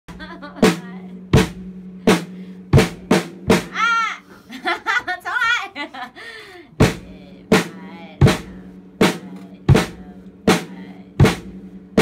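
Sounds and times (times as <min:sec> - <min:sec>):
woman laughing and vocalizing: 0:00.1 - 0:00.7, 0:03.8 - 0:06.8
drum kit hits: 0:00.1 - 0:04.0, 0:06.8 - 0:12.0
steady low tone: 0:06.6 - 0:12.0.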